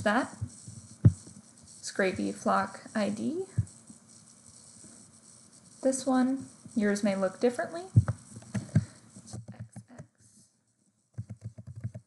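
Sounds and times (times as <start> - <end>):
computer keyboard typing: 11.2 - 12.0.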